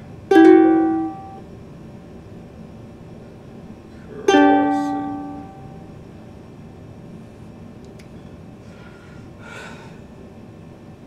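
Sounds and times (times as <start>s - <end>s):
ukulele chord ringing: 0.3s - 1.5s, 4.3s - 5.9s.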